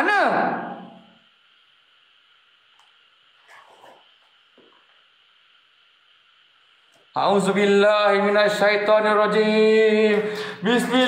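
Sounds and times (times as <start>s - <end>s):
steady hiss: 0.0s - 11.0s.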